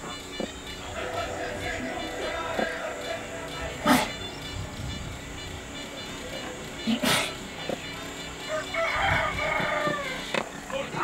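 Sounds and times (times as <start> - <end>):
drawn-out animal call: 0.0 - 11.0.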